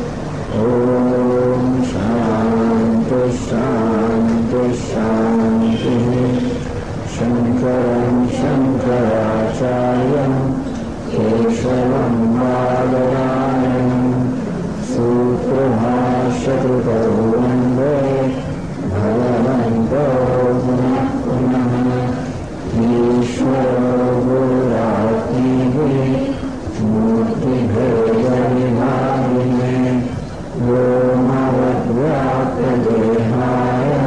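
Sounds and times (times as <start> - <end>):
man chanting low note: 0.0 - 34.0.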